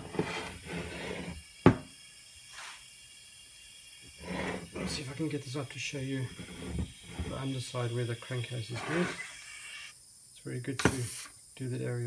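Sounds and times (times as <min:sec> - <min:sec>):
compressed air hiss: 0:01.2 - 0:06.2, 0:10.7 - 0:11.4.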